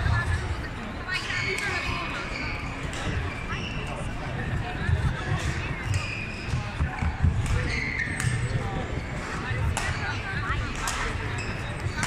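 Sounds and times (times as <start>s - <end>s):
shoes squeaking on court floor: 7.5s - 9.1s.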